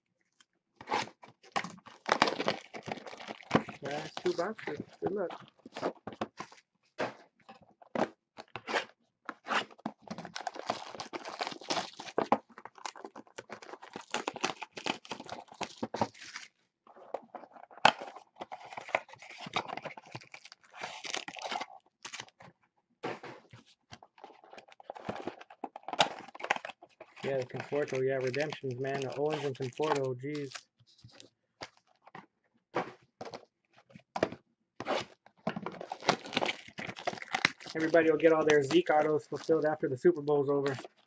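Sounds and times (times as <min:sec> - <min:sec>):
card packs ripping: 0:00.8 - 0:05.9, 0:08.6 - 0:16.5, 0:17.9 - 0:22.3, 0:24.3 - 0:31.8, 0:34.9 - 0:39.8, 0:40.4 - 0:40.9
plastic shrink wrap crinkling: 0:01.8 - 0:05.9, 0:10.1 - 0:16.5, 0:24.4 - 0:31.9, 0:35.7 - 0:39.7.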